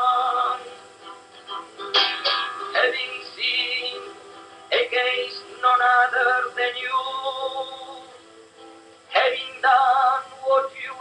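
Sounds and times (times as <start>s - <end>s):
person singing a slow hymn: 0.0s - 1.0s, 1.8s - 8.2s, 9.1s - 11.0s.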